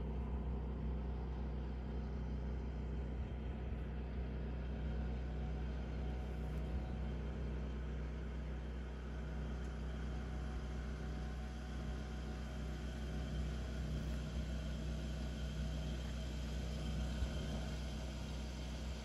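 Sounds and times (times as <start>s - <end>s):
low machine hum: 0.0s - 19.0s.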